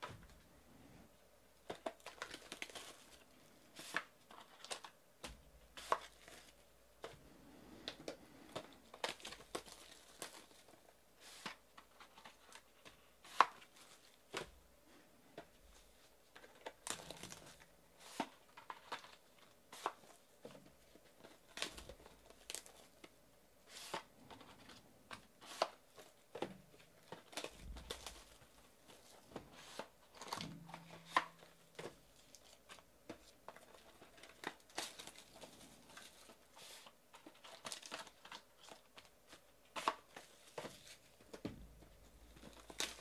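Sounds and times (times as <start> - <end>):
plastic wrap crinkling and tearing: 1.7 - 5.0, 8.8 - 12.7, 16.3 - 20.2, 25.4 - 41.2, 42.3 - 43.0.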